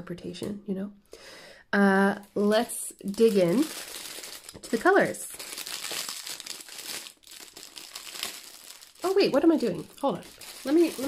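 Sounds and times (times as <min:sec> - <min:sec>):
plastic wrap crinkling: 0:02.2 - 0:11.0.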